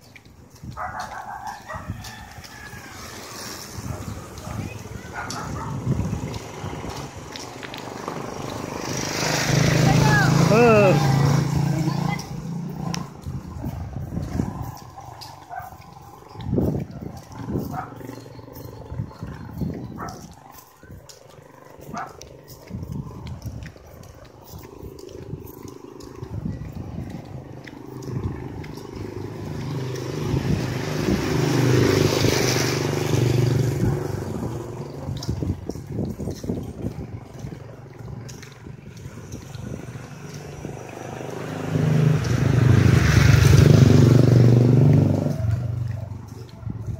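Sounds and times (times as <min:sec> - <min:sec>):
motor vehicle passing: 0:00.0 - 0:46.9.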